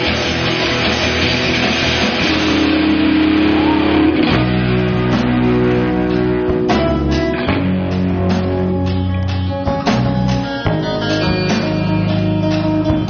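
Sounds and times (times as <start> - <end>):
electric guitars: 0.0 - 13.0
rock band playing: 0.0 - 13.0.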